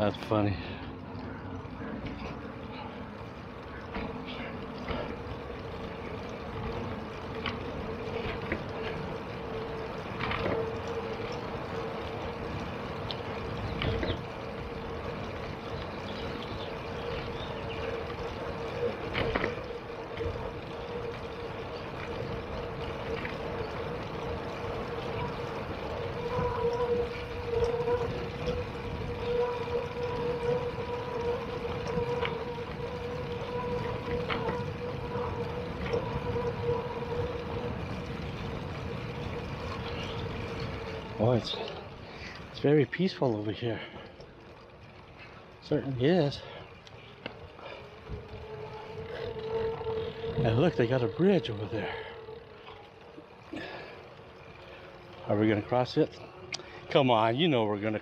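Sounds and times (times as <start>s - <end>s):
mid-pitched whine: 0.0s - 43.0s, 43.9s - 58.0s
bicycle riding rumble: 0.0s - 58.0s.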